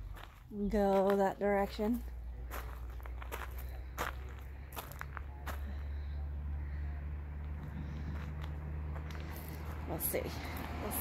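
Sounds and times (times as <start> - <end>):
footsteps on rough ground: 0.0 - 6.3, 7.4 - 11.0
steady low rumble: 0.0 - 11.0.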